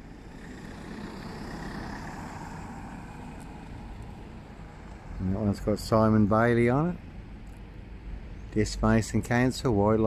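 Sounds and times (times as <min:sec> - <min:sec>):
car passing by: 0:00.0 - 0:05.3.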